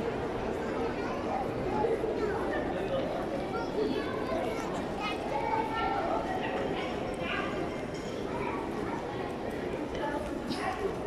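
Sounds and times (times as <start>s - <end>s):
indistinct talking of people: 0.0s - 11.0s
shopping mall background noise: 0.0s - 11.0s.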